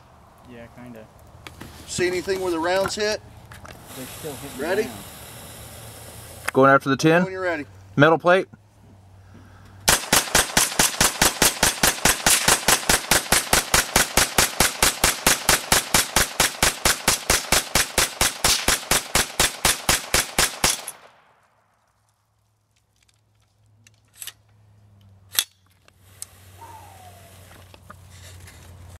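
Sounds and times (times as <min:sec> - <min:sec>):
rifle firing rapid shots: 0:09.9 - 0:21.2.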